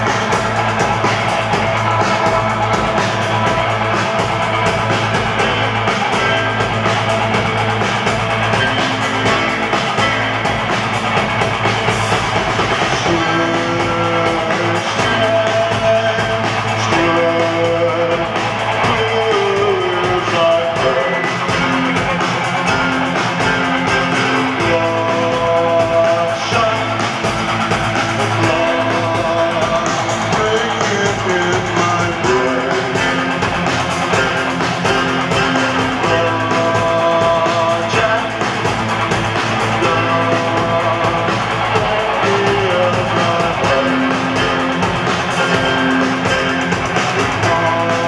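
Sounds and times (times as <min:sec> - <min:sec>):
bass guitar: 0:00.0 - 0:48.0
drum hits: 0:00.0 - 0:48.0
electric guitar: 0:00.0 - 0:48.0
live rock band playing: 0:00.0 - 0:48.0
synthesizer keyboards: 0:00.0 - 0:48.0.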